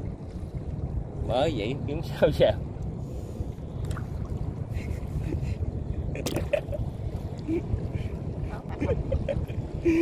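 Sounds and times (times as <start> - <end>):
water slapping around boat: 0.0 - 10.0
wind rumbling on microphone: 0.0 - 10.0.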